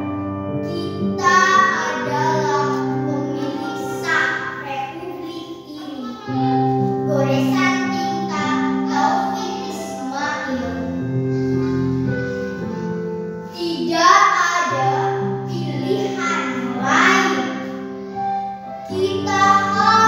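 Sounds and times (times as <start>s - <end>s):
held keyboard notes: 0.0s - 20.0s
girl singing a poem: 0.6s - 20.0s.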